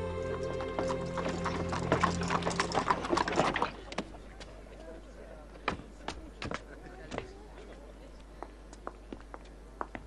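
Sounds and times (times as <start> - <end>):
background music notes: 0.0 - 3.6
horse hooves clip-clopping: 0.3 - 4.1.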